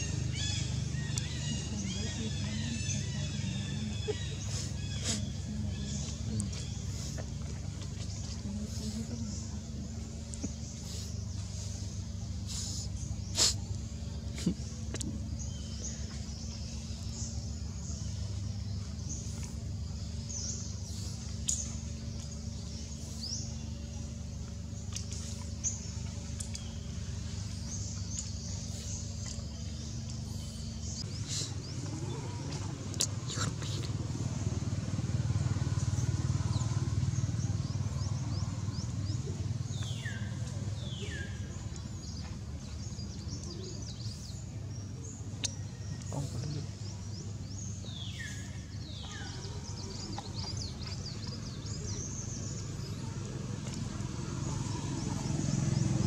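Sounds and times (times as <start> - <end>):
low engine-like hum: 0.0 - 56.0.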